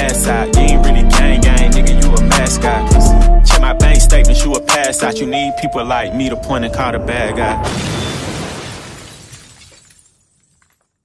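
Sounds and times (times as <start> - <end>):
crash-like sound effect: 7.4 - 9.4.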